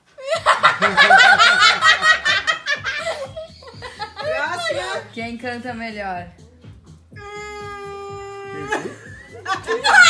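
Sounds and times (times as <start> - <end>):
group of people laughing: 0.2 - 5.0, 8.6 - 10.0.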